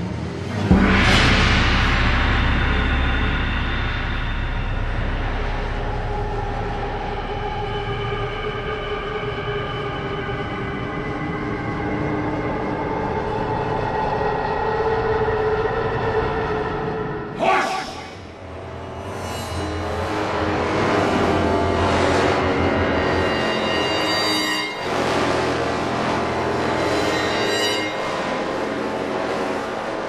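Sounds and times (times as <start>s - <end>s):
horror score drone chord: 0.1s - 30.0s
low rumble: 0.4s - 10.9s.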